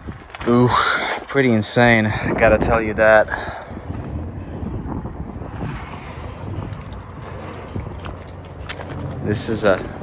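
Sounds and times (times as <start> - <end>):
wind rumbling on microphone: 0.0 - 10.0.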